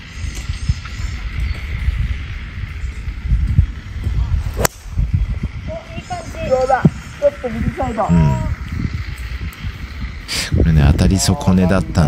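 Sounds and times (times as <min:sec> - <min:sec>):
steady low rumble: 0:00.0 - 0:12.0
golf club striking ball: 0:04.5 - 0:05.0.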